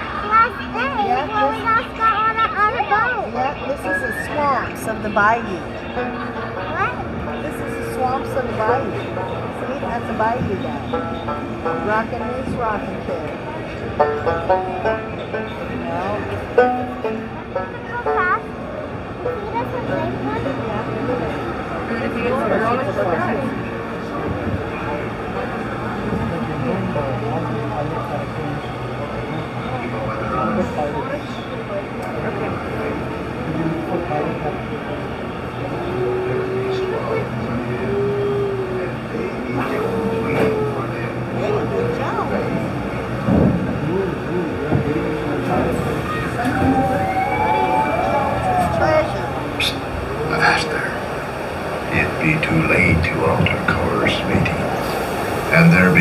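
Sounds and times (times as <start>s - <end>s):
indistinct chatter of riders: 0.0s - 56.0s.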